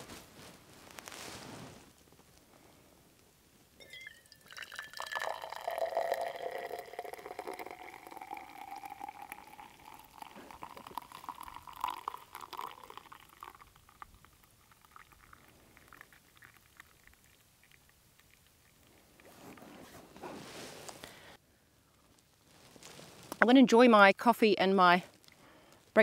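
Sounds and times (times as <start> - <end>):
faint clinks: 3.8 - 13.6
liquid pouring into cup: 3.8 - 19.3.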